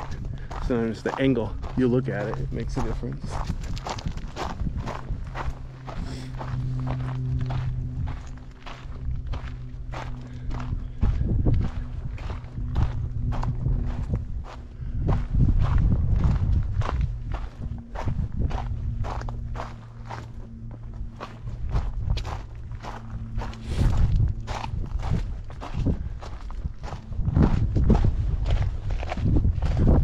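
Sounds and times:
footsteps crunching on gravel: 0.0 - 30.0.

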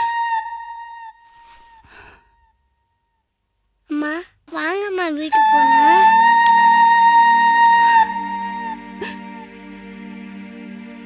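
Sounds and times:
held flute note: 0.0 - 2.5, 5.3 - 10.4
soft breathy sighs: 1.4 - 2.5.

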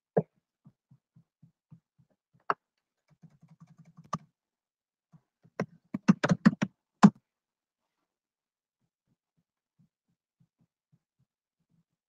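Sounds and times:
typing on computer keyboard: 3.1 - 4.2, 6.0 - 6.7.

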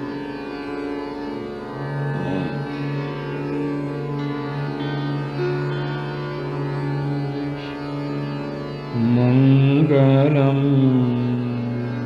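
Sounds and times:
steady drone: 0.0 - 12.0
man singing classical vocal: 8.9 - 12.0.

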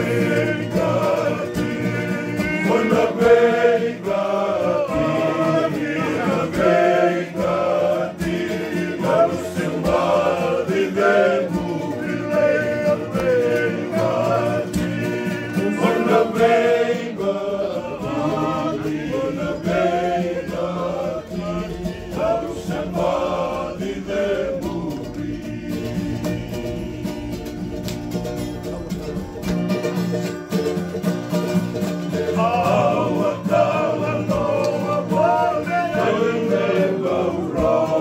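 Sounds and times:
group of men singing: 0.0 - 27.9, 32.1 - 38.0
strummed acoustic guitar: 0.0 - 38.0.

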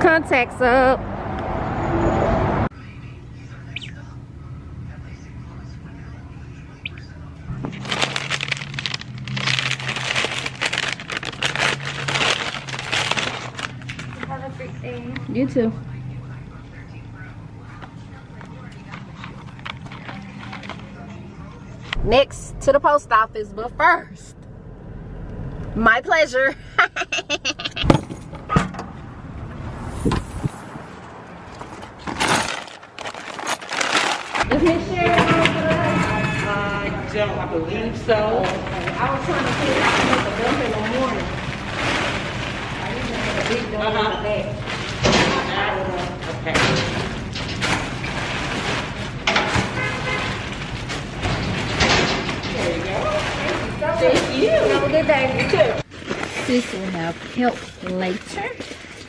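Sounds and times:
steady low hum: 2.7 - 28.3
plastic bag crinkling: 7.6 - 14.3, 32.5 - 34.5, 38.4 - 43.8.

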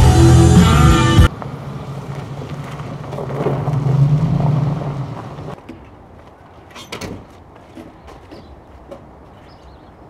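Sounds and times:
loud music: 0.0 - 1.3
car engine and road hum: 0.0 - 9.3.

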